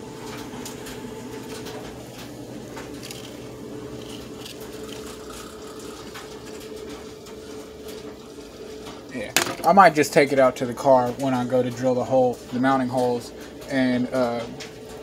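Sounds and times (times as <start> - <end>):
steady mechanical hum: 0.0 - 15.0.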